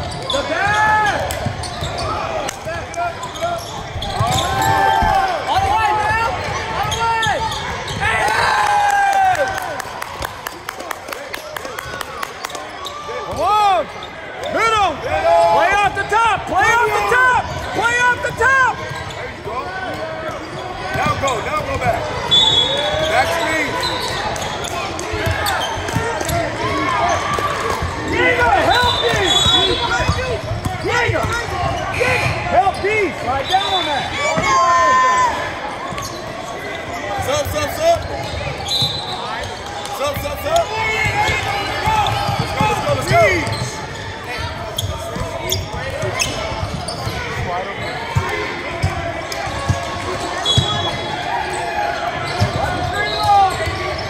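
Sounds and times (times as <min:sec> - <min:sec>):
sneaker squeaks: 0:00.0 - 0:08.3, 0:12.3 - 0:14.7, 0:17.4 - 0:54.0.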